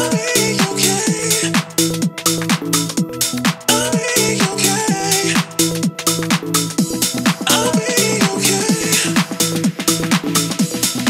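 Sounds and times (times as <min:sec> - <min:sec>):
melodic house music: 0:00.0 - 0:11.0
chopped vocal glitch lead: 0:07.4 - 0:10.0.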